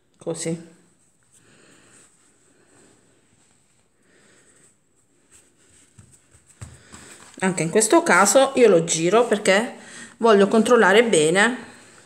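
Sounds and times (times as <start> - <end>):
soft rustles of dough: 0.7 - 11.0.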